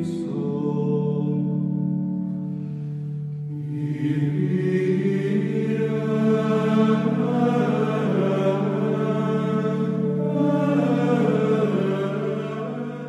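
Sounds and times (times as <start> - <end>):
slow chanting voices: 0.0 - 13.0.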